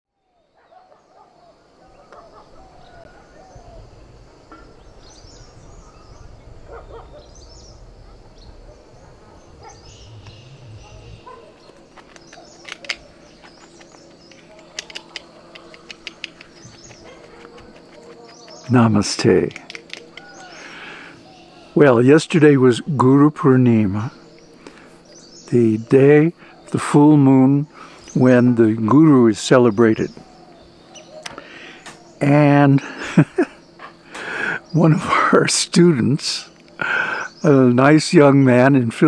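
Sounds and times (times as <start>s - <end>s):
birds chirping: 0.1s - 39.0s
low rumble: 4.8s - 12.0s
sharp clicks and taps: 13.8s - 18.7s, 19.4s - 20.3s.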